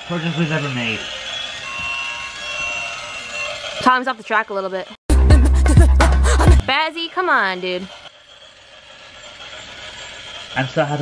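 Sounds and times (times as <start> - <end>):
toy train whirring: 0.0 - 5.0, 6.6 - 11.0.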